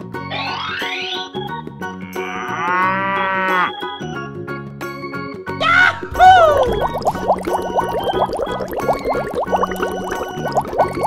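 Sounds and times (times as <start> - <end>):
cow mooing: 2.1 - 3.7.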